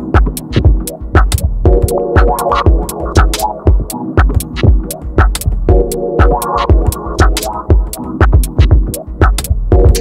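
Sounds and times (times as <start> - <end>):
dub techno music: 0.0 - 10.0.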